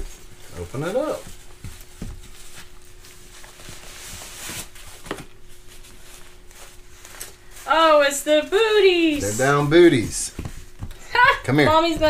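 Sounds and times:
nylon fabric rustling: 0.0s - 12.0s.

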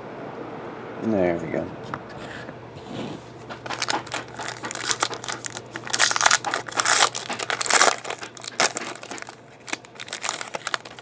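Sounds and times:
plastic wrapper tearing and crinkling: 3.6s - 11.0s.

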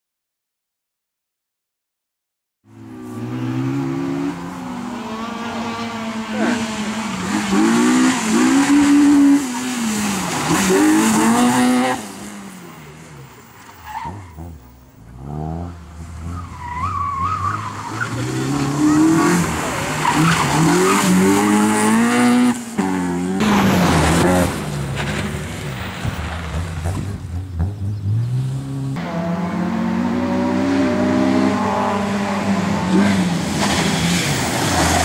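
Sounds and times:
high-revving car engine: 2.9s - 12.9s.

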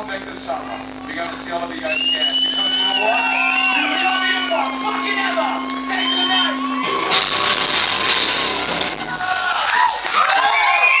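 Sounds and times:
crowd shouting and cheering: 0.0s - 11.0s
heavy metal band closing crash: 6.8s - 9.4s.

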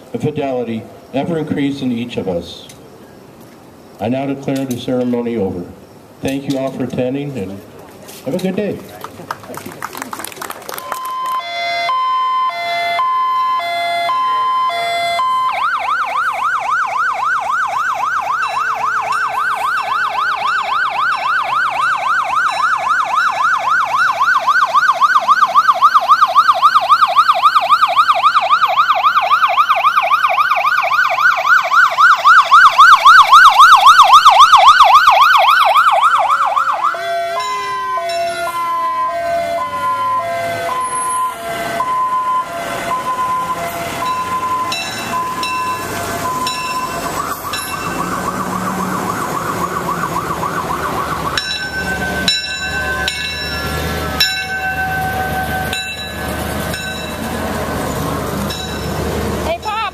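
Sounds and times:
fire engine siren: 10.8s - 59.9s.

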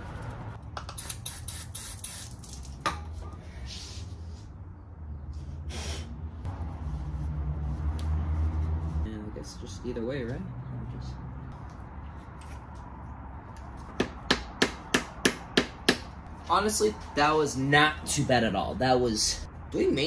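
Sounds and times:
short hisses: 5.6s - 6.2s.

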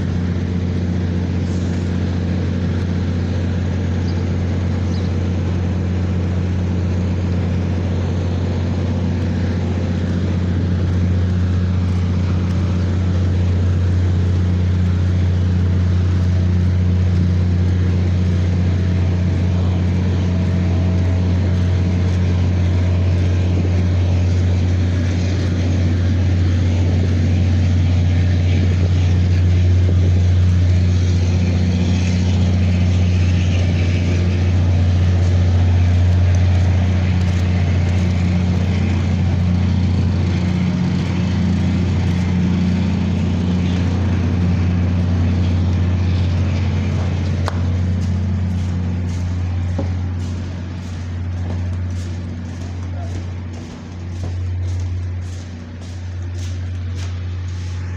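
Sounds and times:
diesel generator droning: 0.0s - 57.9s.

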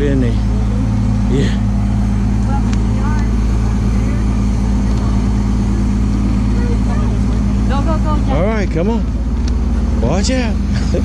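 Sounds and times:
faint voices: 0.0s - 10.6s
bus engine idling: 0.0s - 11.0s.

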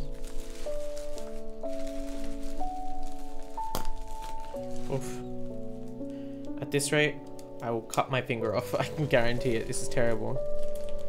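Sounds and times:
sharp crack: 0.0s - 6.6s
background music of held chords: 0.0s - 11.0s
bubble wrap crinkling: 0.0s - 11.0s.

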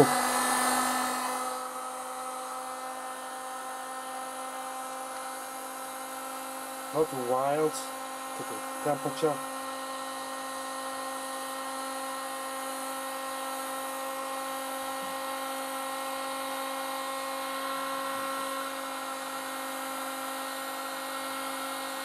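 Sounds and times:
heat gun motor whine: 0.0s - 22.0s.

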